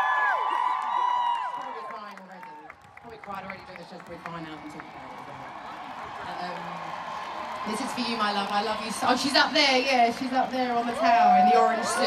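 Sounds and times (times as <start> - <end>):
people clapping: 0.0 - 12.0
audience members talking: 1.7 - 12.0.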